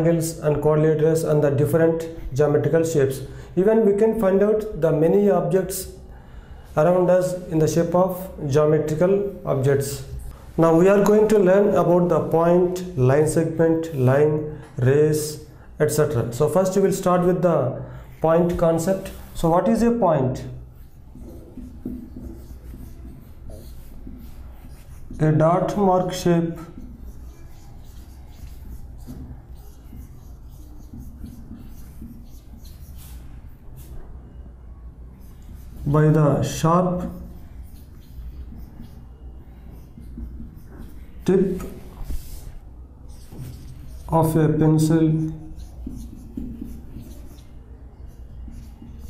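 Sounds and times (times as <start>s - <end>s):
marker writing on whiteboard: 0.0s - 6.0s, 6.6s - 49.0s
man talking: 6.8s - 20.6s, 25.2s - 26.7s, 35.8s - 37.2s, 41.2s - 41.8s, 44.1s - 45.4s.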